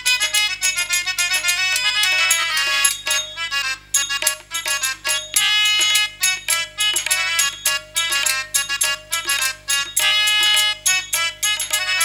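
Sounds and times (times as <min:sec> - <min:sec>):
drums and percussion: 0:00.0 - 0:12.0
reedy wind instrument melody: 0:00.0 - 0:12.0.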